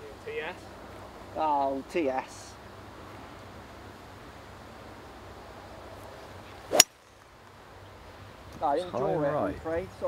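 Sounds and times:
faint background hiss: 0:00.0 - 0:10.0
golf club striking ball: 0:06.7 - 0:07.3.

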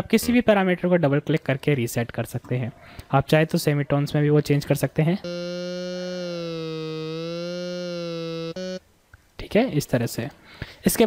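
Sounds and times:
buzzy synthesizer note: 0:05.2 - 0:08.9.

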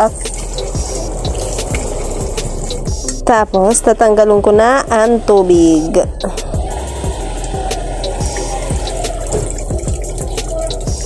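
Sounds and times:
water pouring into sink: 0:07.0 - 0:11.0.

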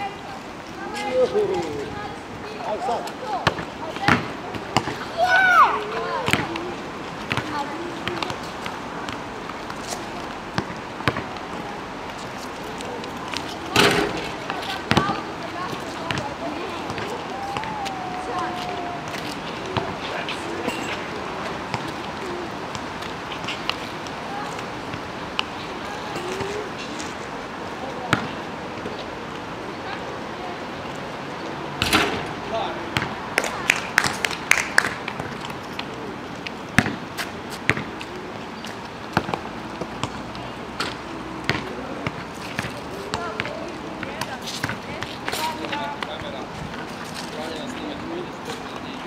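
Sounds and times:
basketball bouncing on asphalt: 0:03.4 - 0:05.0, 0:06.2 - 0:06.6, 0:07.3 - 0:09.7, 0:10.5 - 0:11.6, 0:13.7 - 0:17.8, 0:28.1 - 0:28.3, 0:32.9 - 0:34.2, 0:36.8 - 0:37.0, 0:37.6 - 0:38.0, 0:39.1 - 0:46.4.

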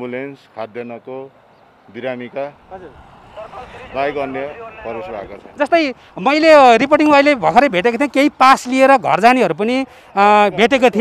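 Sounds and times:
men talking: 0:00.0 - 0:11.0
motor scooter passing: 0:01.6 - 0:08.3.

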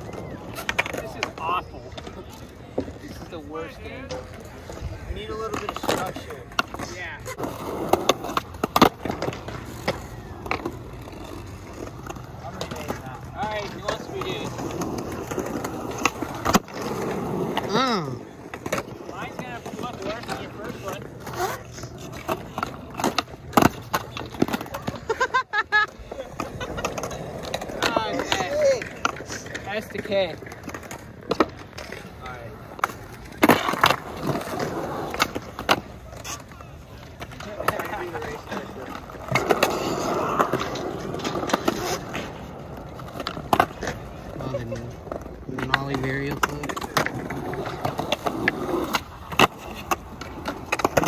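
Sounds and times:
skateboard wheels rolling on concrete: 0:00.0 - 0:51.0.

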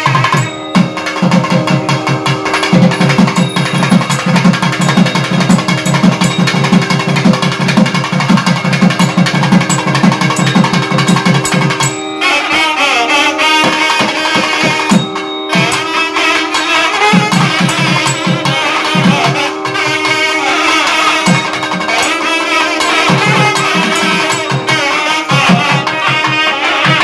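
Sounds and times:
fast drumming: 0:00.0 - 0:12.7, 0:13.6 - 0:27.0
double-reed wind instrument melody: 0:00.0 - 0:27.0.

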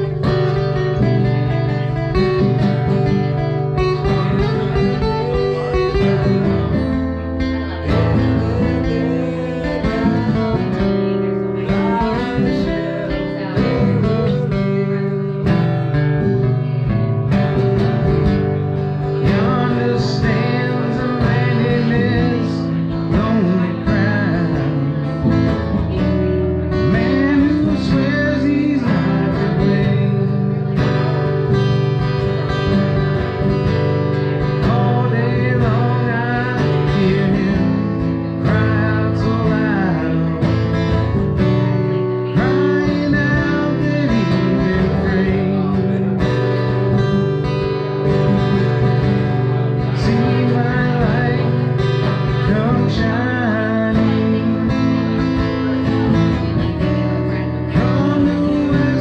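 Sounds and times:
acoustic guitars playing: 0:00.0 - 0:59.0
man singing: 0:00.0 - 0:59.0.

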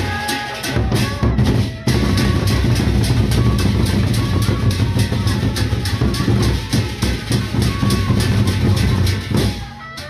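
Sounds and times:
barrel drums beating: 0:00.0 - 0:10.0.

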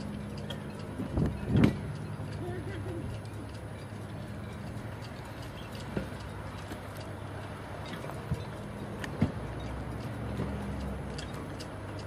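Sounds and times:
faint irregular ticks: 0:00.0 - 0:12.0.

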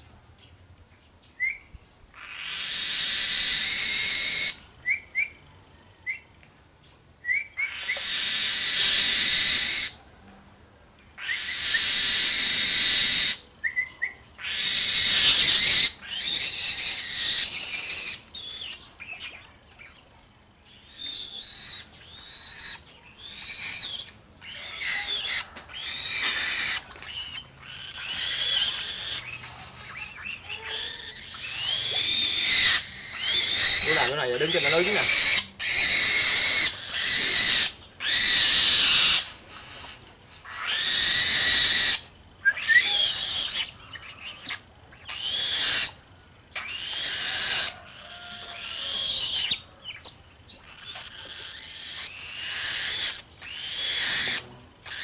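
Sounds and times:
bird of prey calling: 0:01.4 - 0:05.4, 0:07.2 - 0:10.0, 0:11.0 - 0:20.1, 0:20.7 - 0:55.0.

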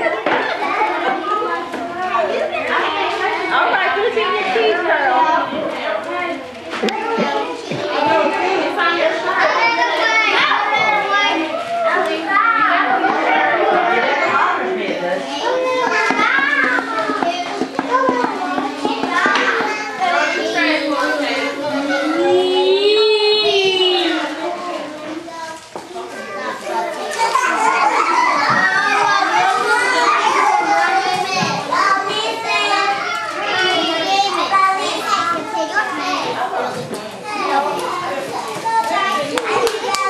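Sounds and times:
young children chattering: 0:00.0 - 0:40.0.

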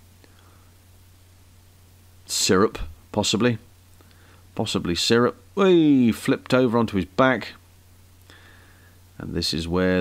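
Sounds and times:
faint low hum with hiss: 0:00.0 - 0:10.0.

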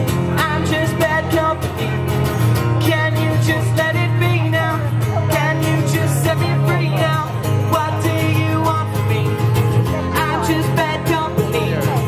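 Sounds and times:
acoustic guitar strummed: 0:00.0 - 0:12.0
man singing: 0:00.0 - 0:12.0.

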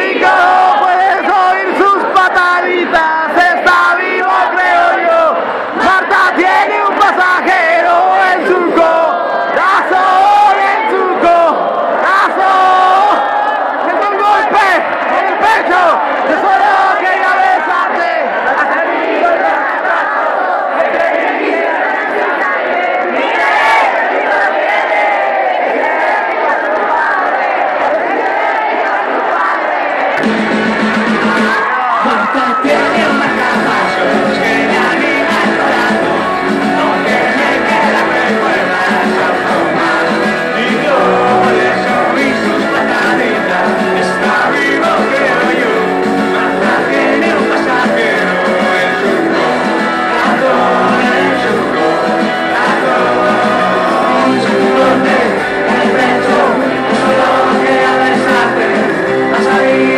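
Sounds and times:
concert crowd singing: 0:00.0 - 0:59.9
band playing: 0:30.2 - 0:59.9.

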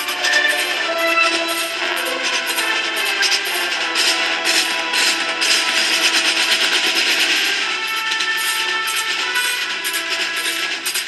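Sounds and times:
wind instruments holding notes: 0:00.0 - 0:03.9
marching snare drums: 0:01.6 - 0:11.0.

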